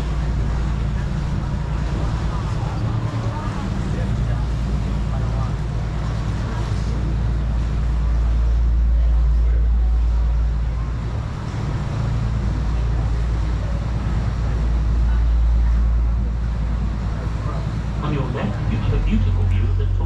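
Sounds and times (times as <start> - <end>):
boat motor droning: 0.0 - 20.0.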